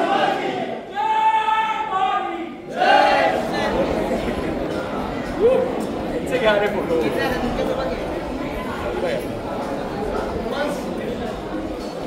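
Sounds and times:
group of voices chanting: 0.0s - 1.0s, 2.5s - 4.2s.

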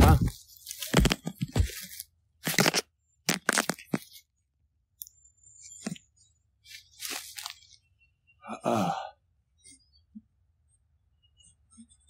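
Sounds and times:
crunching in dry leaves: 6.9s - 7.6s.

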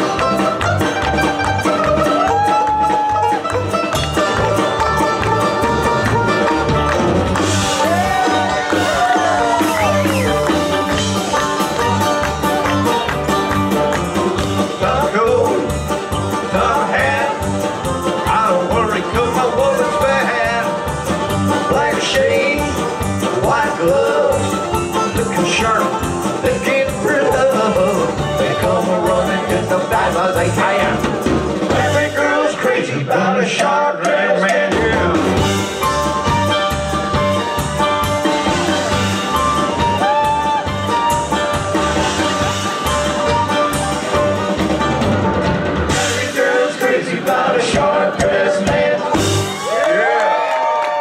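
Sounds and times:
mandolin: 0.0s - 32.2s, 34.8s - 46.4s
electric bass: 0.0s - 32.6s, 34.7s - 49.8s
country band playing: 0.0s - 51.0s
drum kit: 0.0s - 51.0s
strummed acoustic guitar: 3.2s - 32.2s.

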